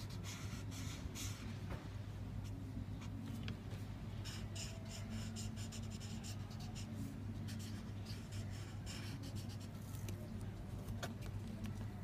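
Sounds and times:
marker scratching on paper: 0.0s - 1.5s, 4.2s - 10.1s
steady low hum: 0.0s - 12.0s.

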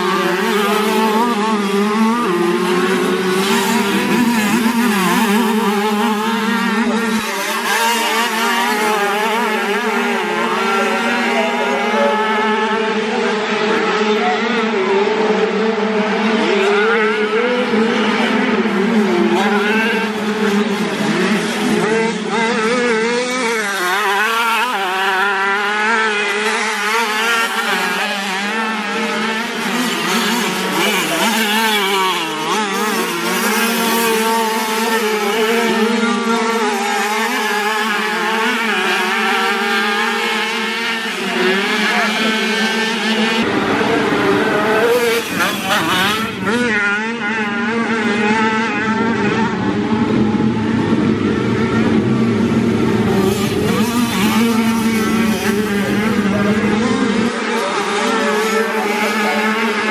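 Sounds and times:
motocross bikes revving: 0.0s - 59.9s.

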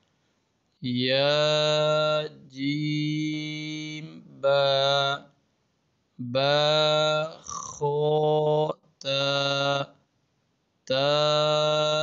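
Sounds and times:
man chanting: 0.8s - 5.3s, 6.2s - 10.0s, 10.9s - 12.0s.

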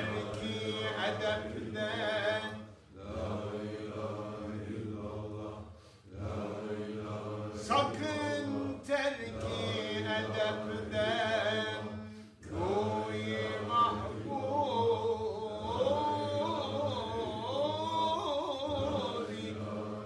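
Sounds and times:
group chanting: 0.0s - 20.0s.

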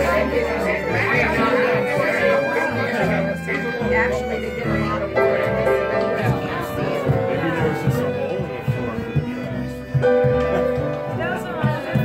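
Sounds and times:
piano: 0.0s - 12.0s
upright double bass: 0.0s - 12.0s.

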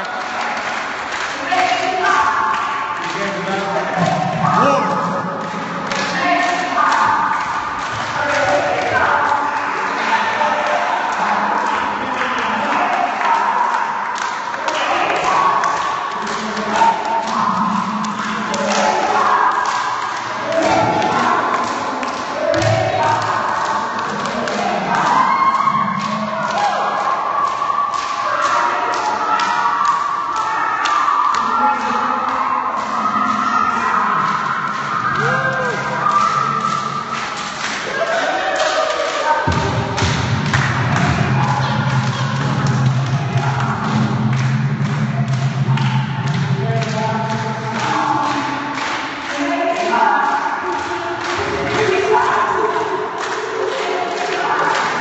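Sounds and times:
group of people singing and humming: 2.0s - 55.0s.

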